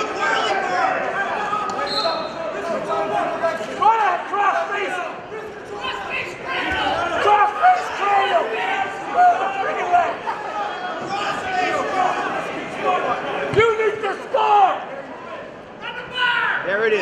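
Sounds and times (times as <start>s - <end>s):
people shouting in a gym: 0.0s - 16.7s.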